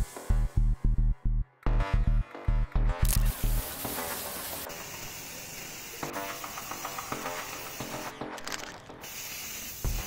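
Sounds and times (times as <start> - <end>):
background music: 0.0 - 10.0
spray paint can hissing: 3.0 - 10.0.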